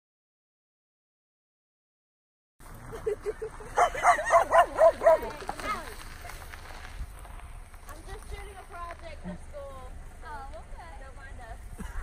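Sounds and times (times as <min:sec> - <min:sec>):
dog yapping and barking: 0:03.8 - 0:05.4.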